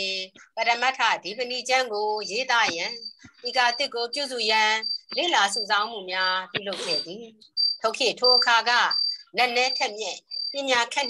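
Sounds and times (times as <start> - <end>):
person speaking: 0.0 - 11.0.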